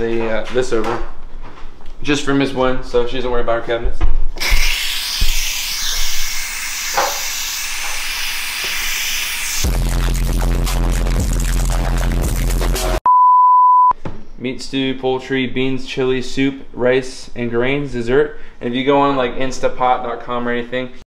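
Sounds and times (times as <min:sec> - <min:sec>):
pressure cooker steam hissing: 0:04.4 - 0:09.7
steady beep tone: 0:13.0 - 0:14.0.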